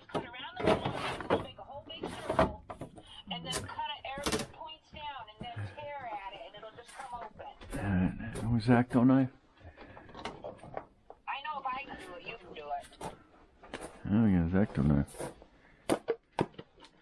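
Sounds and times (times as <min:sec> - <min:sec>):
items knocking and clattering: 0:00.0 - 0:04.6, 0:15.2 - 0:17.0.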